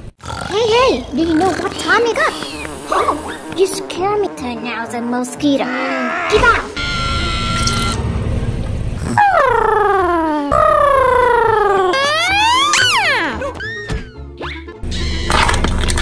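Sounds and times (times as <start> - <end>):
slide whistle glides: 6.8 - 8.0
cartoon boings: 9.0 - 15.4.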